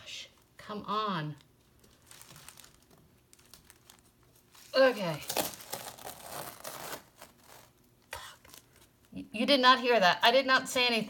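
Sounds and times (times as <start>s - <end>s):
tape peeling off canvas: 1.8s - 7.8s.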